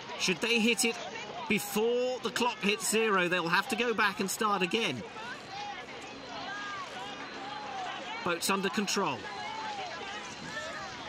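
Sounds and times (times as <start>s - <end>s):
faint voices calling: 0.0s - 11.0s
water: 0.0s - 11.0s
wind: 0.0s - 11.0s.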